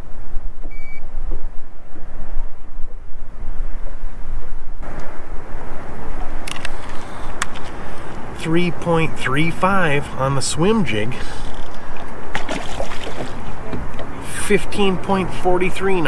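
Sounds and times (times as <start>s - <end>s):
wind rumbling on microphone: 0.0s - 16.0s
short high beep: 0.7s - 1.0s.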